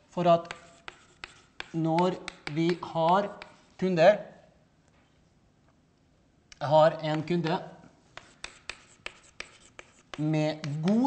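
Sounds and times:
chalk tapping and scraping on blackboard: 0.2s - 3.8s, 7.0s - 7.5s, 8.1s - 11.0s.

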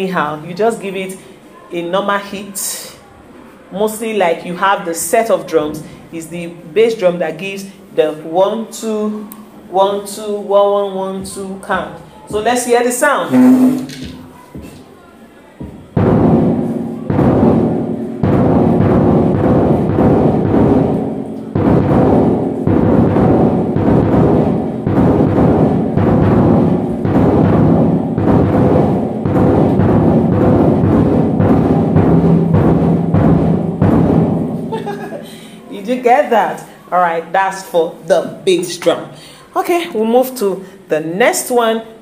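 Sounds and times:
bass drum hits: 15.7s - 35.2s.

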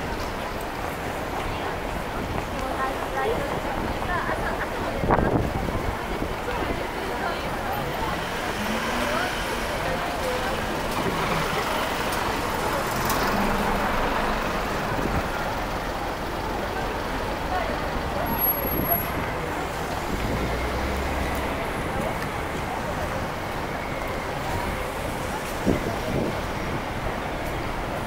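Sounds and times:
cars driving slowly: 0.0s - 28.0s
chatter of passers-by: 0.0s - 28.0s
deep engine rumble: 5.0s - 27.1s.

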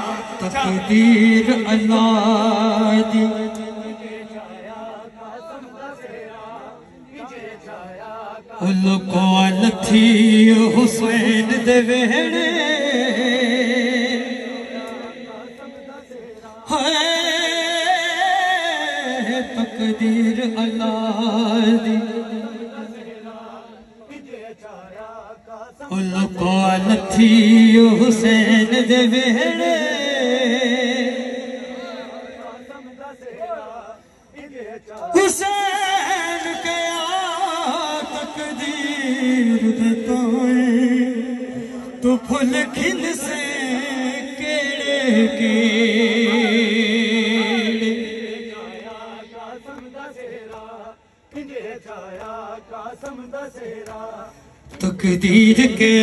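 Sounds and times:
amplified man chanting: 0.0s - 56.0s.

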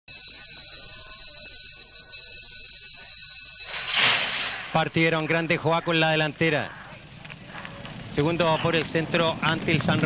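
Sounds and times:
starting gate bell ringing: 0.1s - 5.2s.

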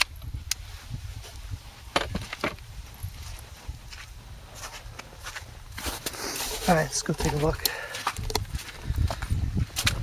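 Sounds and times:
footsteps on grass and snow: 0.6s - 10.0s.

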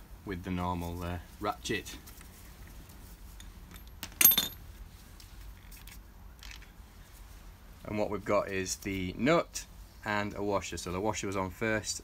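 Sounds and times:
metallic clink of nut: 3.4s - 4.6s.

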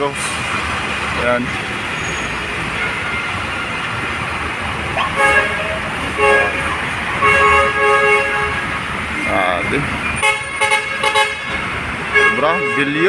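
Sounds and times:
dump trucks rumbling: 0.0s - 13.0s
truck horn blasts: 5.0s - 8.8s, 10.2s - 13.0s.

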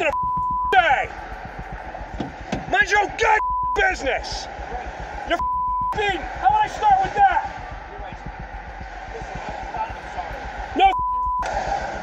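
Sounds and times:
censor bleep: 0.1s - 0.8s, 3.4s - 3.8s, 5.4s - 6.0s, 10.9s - 11.5s.

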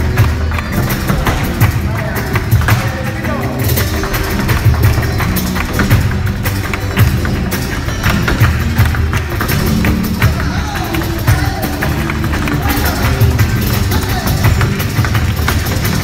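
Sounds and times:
electric bass: 0.0s - 16.0s
feet stamping on a stage: 0.0s - 16.0s
flamenco guitar: 0.0s - 16.0s
hand-clapping: 0.0s - 16.0s.

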